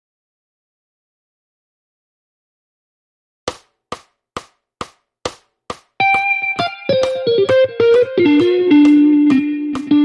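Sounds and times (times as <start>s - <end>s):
guitar lick: 6.0s - 10.0s
metronome clicks: 6.0s - 10.0s.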